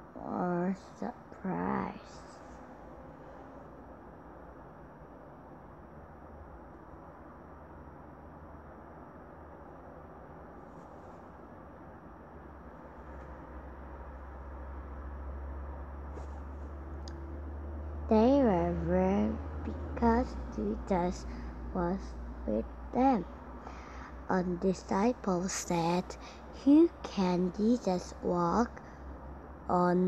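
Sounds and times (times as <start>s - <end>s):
low hum: 0.0s - 30.0s.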